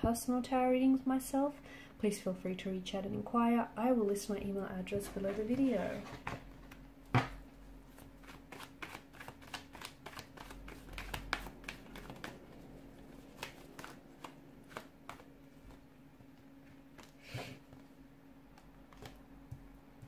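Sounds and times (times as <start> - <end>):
cards being shuffled: 7.9 - 15.8.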